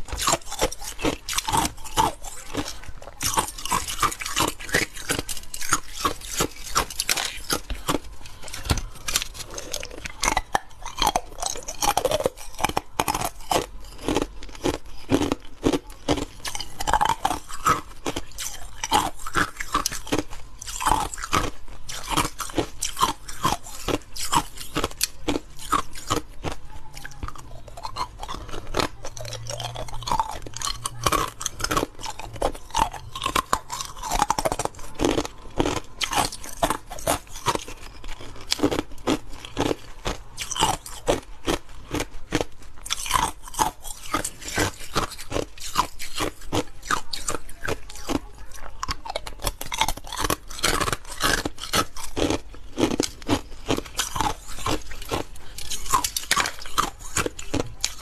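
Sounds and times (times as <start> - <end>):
ice cubes being chewed: 0.0 - 58.0.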